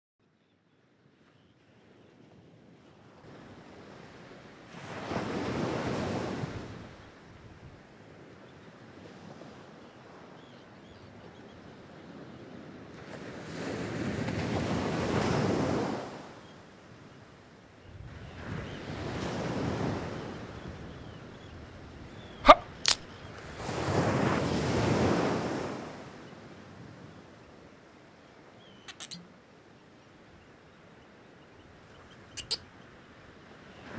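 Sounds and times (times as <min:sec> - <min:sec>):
ocean waves washing onto beach: 0:03.2 - 0:07.2, 0:12.7 - 0:17.0, 0:21.7 - 0:29.7.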